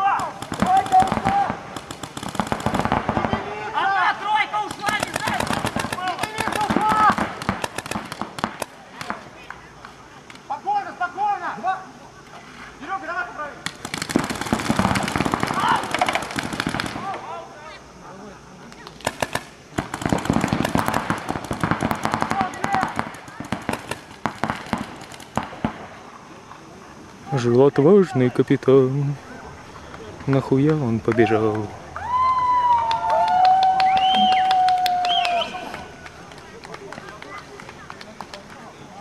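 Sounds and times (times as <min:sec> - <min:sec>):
long drawn-out shouts: 0:00.0 - 0:01.6, 0:03.2 - 0:07.3, 0:15.5 - 0:16.1, 0:31.2 - 0:36.0
paintball markers firing: 0:00.0 - 0:03.4, 0:04.6 - 0:09.2, 0:13.6 - 0:17.2, 0:18.8 - 0:25.9.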